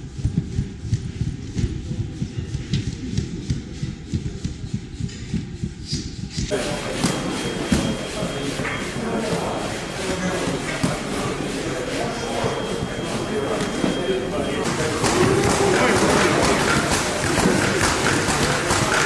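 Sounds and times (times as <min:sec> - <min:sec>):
people chattering in echoing hall: 0:00.0 - 0:19.0.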